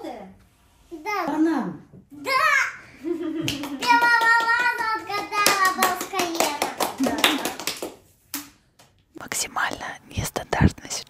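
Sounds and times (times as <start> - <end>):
little girl talking excitedly: 2.2 - 2.8
woman whispering: 9.2 - 11.0.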